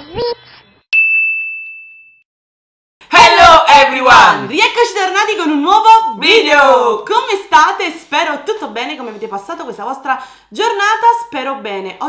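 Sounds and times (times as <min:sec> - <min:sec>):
bright chime ding: 0:01.0 - 0:02.2.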